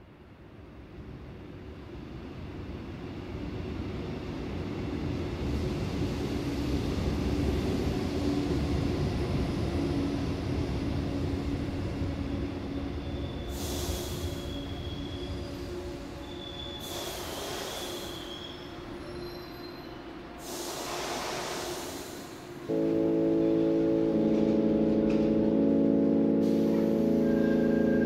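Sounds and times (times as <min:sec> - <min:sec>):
train rumbling past: 0:00.9 - 0:28.0
hiss with high squeal: 0:13.0 - 0:22.4.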